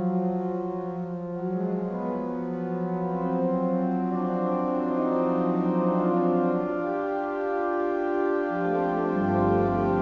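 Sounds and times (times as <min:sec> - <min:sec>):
pipe organ playing chords: 0:00.0 - 0:10.0.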